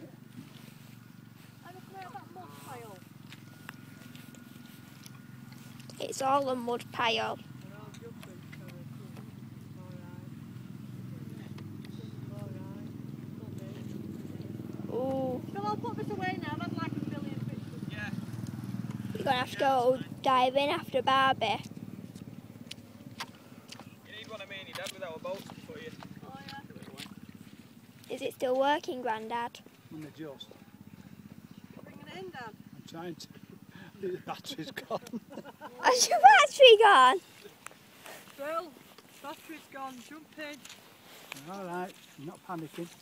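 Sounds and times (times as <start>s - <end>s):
model boat motor buzzing: 0.5s - 7.9s.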